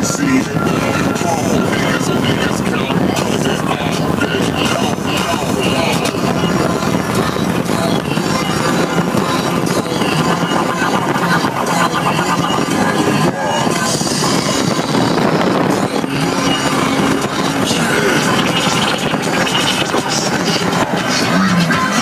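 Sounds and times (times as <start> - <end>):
rap music: 0.0 - 22.0
wind and road noise: 0.0 - 22.0.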